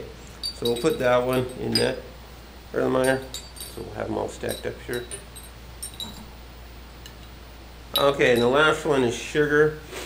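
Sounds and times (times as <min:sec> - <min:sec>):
low room hum: 0:00.0 - 0:10.0
glass clinking: 0:00.3 - 0:02.2, 0:02.9 - 0:06.4, 0:07.0 - 0:08.8.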